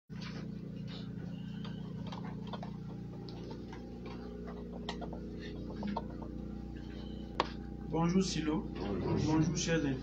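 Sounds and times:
low room hum: 0.1 - 10.0.

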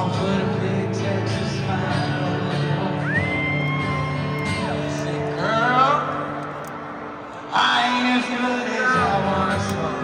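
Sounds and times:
live country band playing: 0.0 - 10.0.

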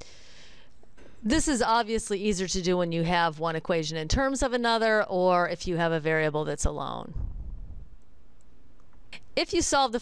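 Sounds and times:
low rumble: 7.1 - 8.3.

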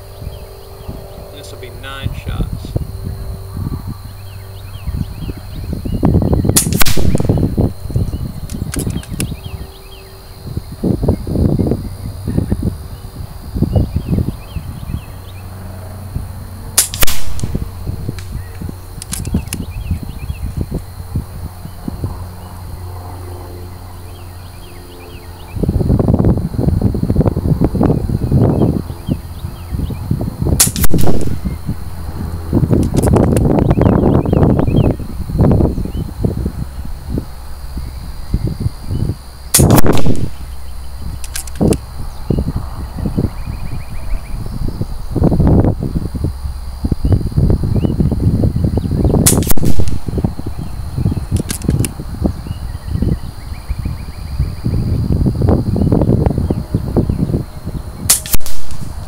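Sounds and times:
air rifle shots: 6.5 - 7.6, 8.4 - 9.3, 16.8 - 18.4, 19.0 - 19.7, 30.6 - 31.6, 39.5 - 40.6, 41.2 - 41.8, 49.2 - 50.4, 51.3 - 51.9, 58.1 - 59.0.

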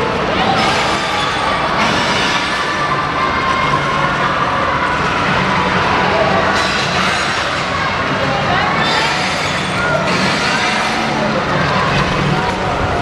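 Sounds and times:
indistinct voices: 0.0 - 13.0
loud indoor din: 0.0 - 13.0.

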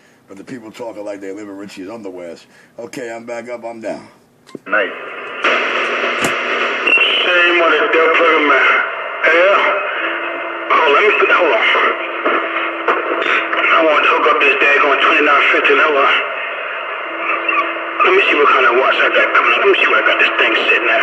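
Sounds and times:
garbled voices over two-way radio: 10.7 - 16.4, 17.1 - 21.0.

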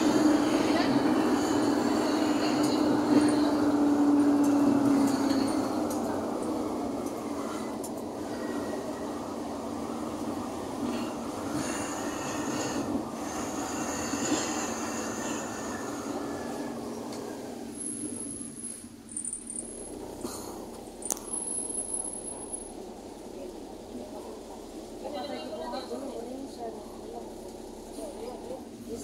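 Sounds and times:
vehicle engine and road noise: 0.0 - 29.0.

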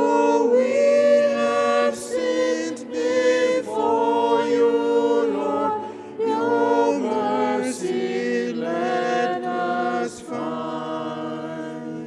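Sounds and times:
choir singing a hymn: 0.0 - 12.0
singer breath: 5.8 - 6.2.

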